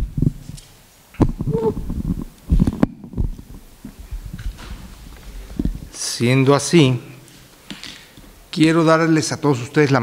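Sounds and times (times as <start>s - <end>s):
microphone handling thumps: 1.2s - 5.9s.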